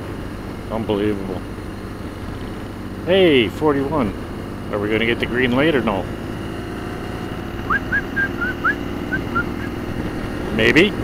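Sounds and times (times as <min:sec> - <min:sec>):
motorcycle engine running: 0:00.0 - 0:11.0
road and wind noise: 0:00.0 - 0:11.0
high whistled notes: 0:07.6 - 0:09.8.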